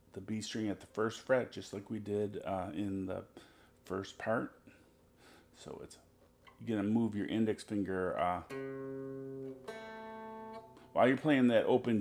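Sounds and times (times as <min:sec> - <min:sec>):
electric guitar notes plucked: 0:08.5 - 0:10.9.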